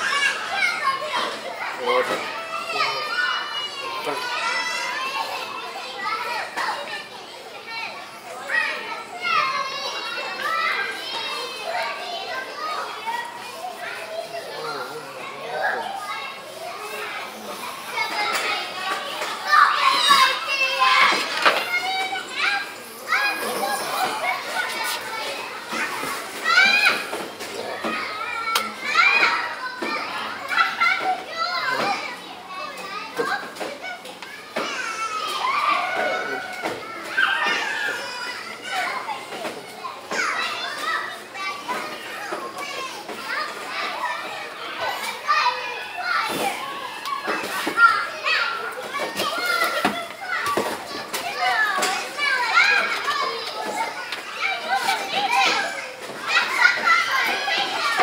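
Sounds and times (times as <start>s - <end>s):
children calling and shouting: 0.0s - 58.0s.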